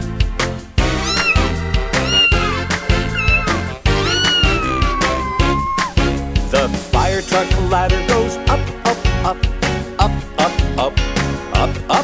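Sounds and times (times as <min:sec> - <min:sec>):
upbeat background music: 0:00.0 - 0:12.0
cartoon cat meowing: 0:01.0 - 0:06.0.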